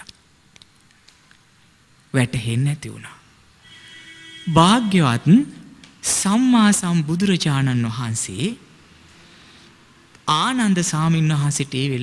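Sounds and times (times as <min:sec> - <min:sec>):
man intoning a sermon: 0:04.5 - 0:08.6, 0:10.3 - 0:12.0.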